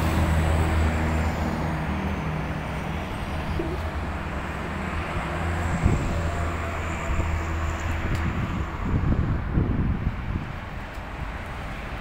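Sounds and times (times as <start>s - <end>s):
outdoor noise: 0.0s - 12.0s.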